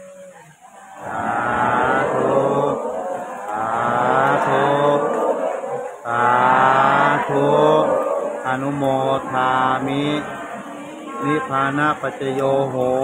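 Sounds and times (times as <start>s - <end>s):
man chanting in low voice: 0.0s - 13.0s.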